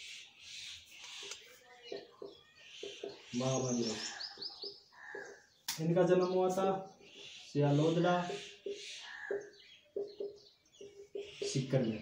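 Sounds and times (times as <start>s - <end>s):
marker squeaking on whiteboard: 10.9s - 11.7s.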